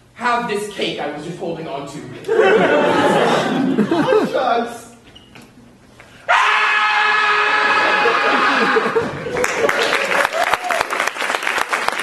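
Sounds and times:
person screaming: 0:06.3 - 0:09.0.

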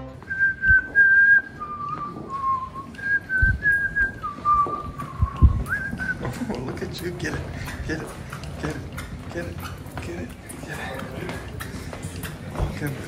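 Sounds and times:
soft low thumps: 0:00.0 - 0:08.0
person whistling a tune: 0:00.2 - 0:06.4.

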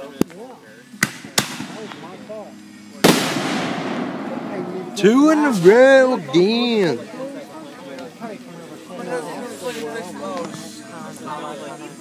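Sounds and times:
firework burst: 0:03.0 - 0:05.7
fireworks bangs: 0:03.0 - 0:06.0.

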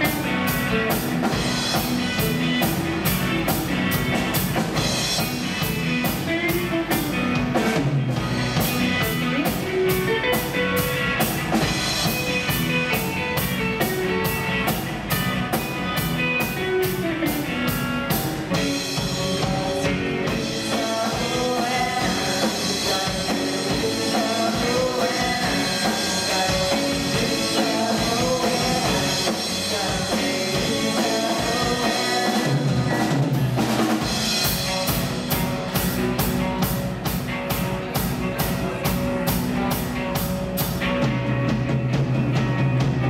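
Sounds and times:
electric guitar: 0:00.0 - 0:43.0
live rock band playing: 0:00.0 - 0:43.0.

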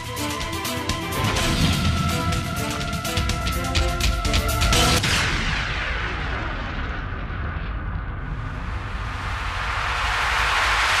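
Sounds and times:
deep rumble: 0:01.2 - 0:11.0
whooshing rush of noise: 0:05.0 - 0:11.0.

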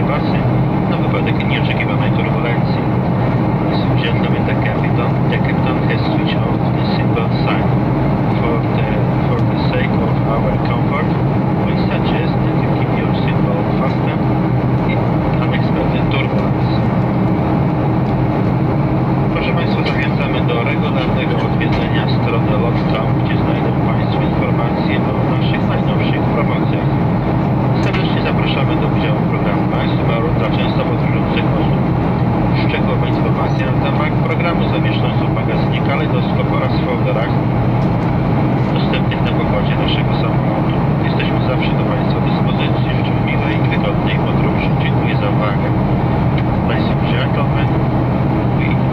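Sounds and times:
airflow over fuselage: 0:00.0 - 0:48.9
jet engines in cabin: 0:00.0 - 0:48.9.

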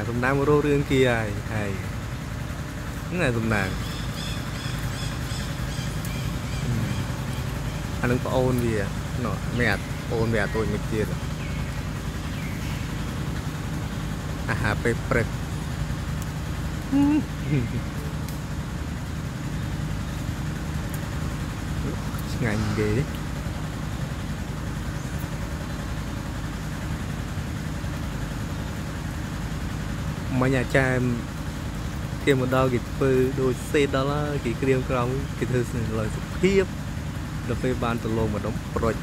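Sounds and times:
engine idling: 0:00.0 - 0:39.0
low mechanical hum: 0:00.0 - 0:39.0
high bird chirps: 0:03.7 - 0:08.3, 0:09.4 - 0:14.2.

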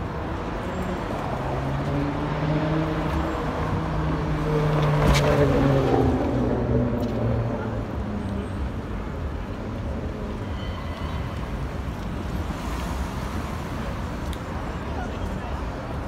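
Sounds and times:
cars driving past: 0:00.0 - 0:16.0
low rumble of engines and tyres: 0:00.0 - 0:16.0.

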